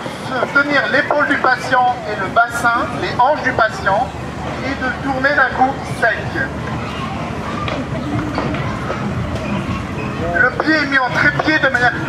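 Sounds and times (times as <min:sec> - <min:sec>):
faint distant voices: 0:00.0 - 0:12.0
low crowd rumble: 0:00.0 - 0:12.0.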